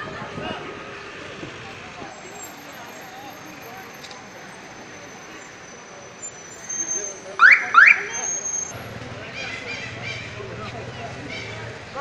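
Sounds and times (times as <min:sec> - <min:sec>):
people talking: 0:00.0 - 0:12.0
traffic noise: 0:00.0 - 0:12.0.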